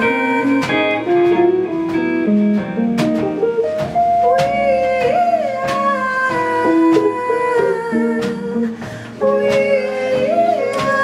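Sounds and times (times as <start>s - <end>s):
drum kit playing: 0.0s - 11.0s
electric guitars: 0.0s - 11.0s.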